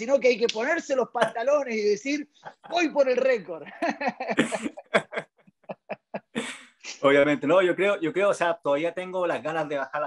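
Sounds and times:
men laughing: 2.2 - 6.6.

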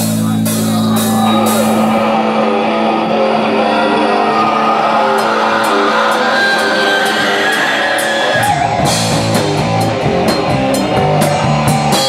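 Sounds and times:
drums: 0.0 - 2.4, 3.5 - 12.0
electric bass: 0.0 - 12.0
electric guitar: 0.0 - 12.0.

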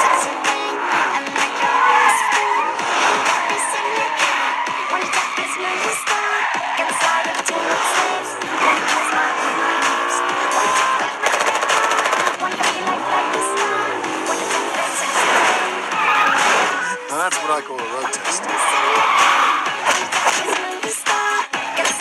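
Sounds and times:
car engine revving: 0.0 - 22.0
loud background music: 0.0 - 22.0
tyres squealing: 0.0 - 22.0.

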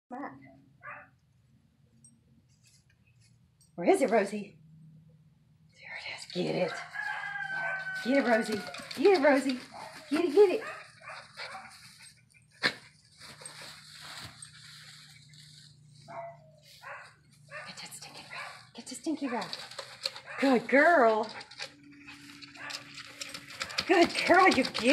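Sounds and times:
dog barking: 0.8 - 1.1, 7.4 - 8.0, 9.7 - 11.7, 16.1 - 19.5, 22.5 - 23.0
dogs snuffling: 6.0 - 24.9
dogs rustling through straw: 6.7 - 18.7.

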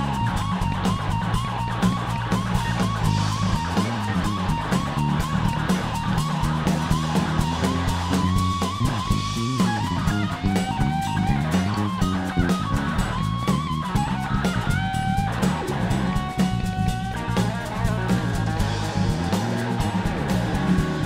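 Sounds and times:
blues band playing: 0.0 - 21.0
electric guitar solo: 7.2 - 21.0.

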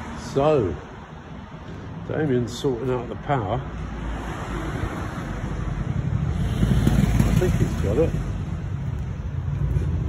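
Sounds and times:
low rough street rumble: 0.0 - 10.0.

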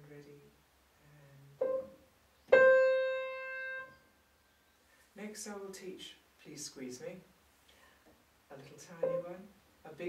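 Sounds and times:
grand piano notes: 9.0 - 9.4.

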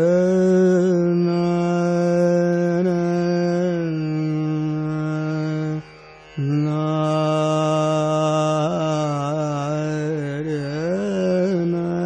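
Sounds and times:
faint tanpura drone: 0.0 - 12.0
man singing classical vocal: 0.0 - 12.0.

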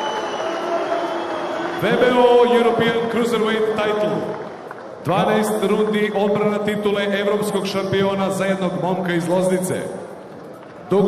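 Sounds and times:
man speaking over public address: 1.8 - 4.4, 5.0 - 10.1.

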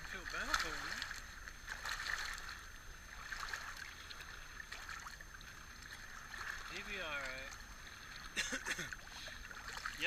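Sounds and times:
seawater lapping among rocks: 0.0 - 10.0.

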